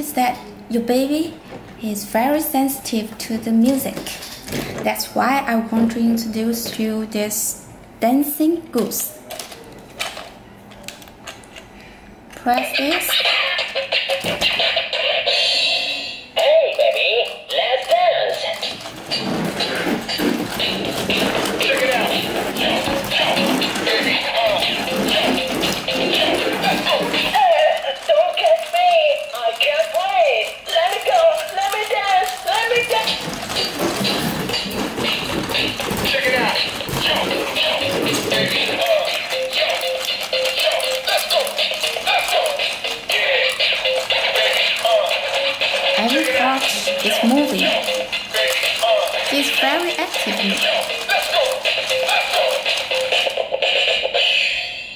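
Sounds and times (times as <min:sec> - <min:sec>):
toy high-pitched cartoon voice: 0:16.4 - 0:18.8, 0:26.7 - 0:33.2
plastic toy clicks and knocks: 0:17.7 - 0:53.4.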